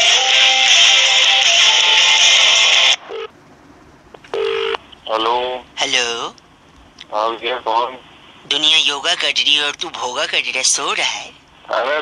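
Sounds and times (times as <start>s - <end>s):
telephone line beep: 4.3s - 4.8s.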